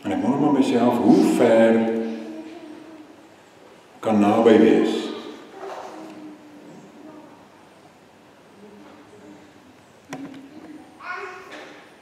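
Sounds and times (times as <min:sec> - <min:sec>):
man speaking: 0:00.0 - 0:02.2, 0:04.0 - 0:05.4.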